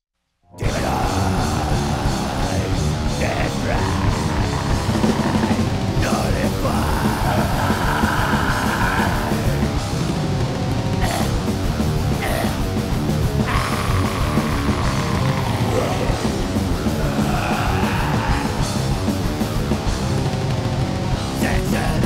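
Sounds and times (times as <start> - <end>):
death metal music: 0.5 - 22.0.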